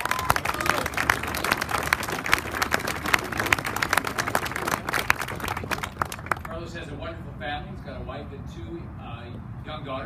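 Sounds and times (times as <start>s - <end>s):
crowd applauding: 0.0s - 6.6s.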